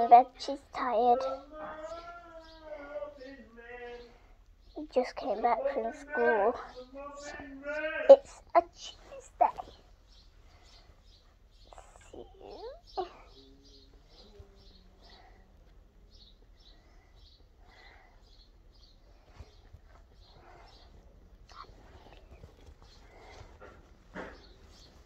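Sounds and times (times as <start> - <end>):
faint high chirping: 0.0 - 25.0.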